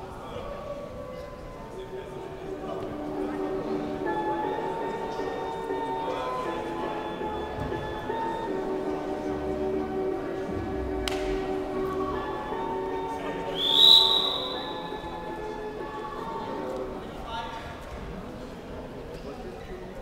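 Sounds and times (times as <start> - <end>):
music playing in a hall: 0.0 - 20.0
referee's whistle blowing: 13.5 - 15.0.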